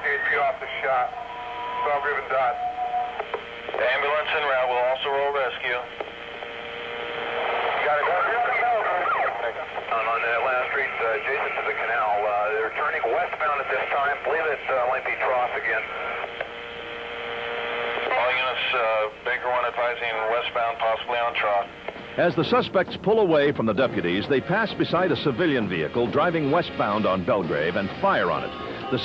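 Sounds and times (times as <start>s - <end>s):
steady hum tone: 0.0s - 29.0s
voices over police radio: 7.4s - 16.3s, 17.8s - 22.3s.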